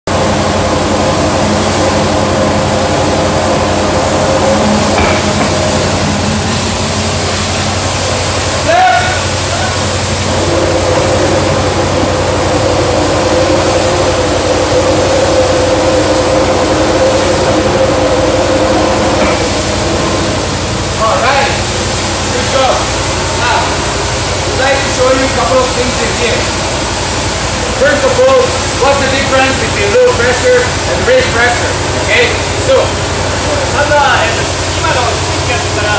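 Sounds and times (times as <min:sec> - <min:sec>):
electric blower fan running: 0:00.1 - 0:35.9.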